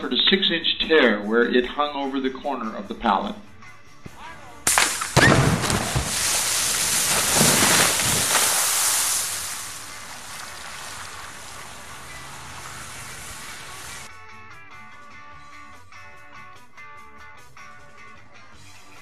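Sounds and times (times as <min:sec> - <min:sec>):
underwater explosion blast: 0:04.7 - 0:11.9
steady hiss: 0:04.7 - 0:14.1
water splashing onto ground: 0:04.7 - 0:14.1.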